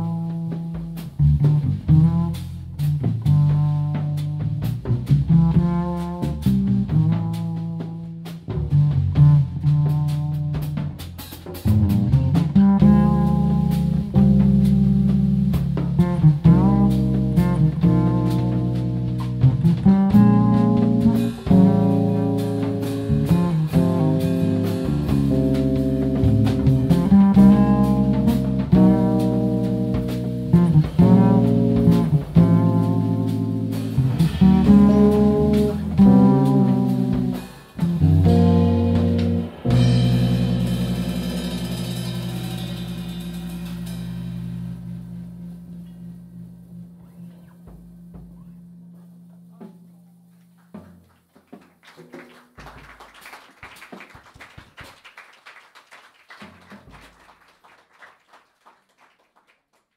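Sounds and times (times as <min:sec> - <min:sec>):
bass notes and chords: 0:00.0 - 0:51.2
soft drum and cymbal strokes: 0:35.6 - 0:46.2.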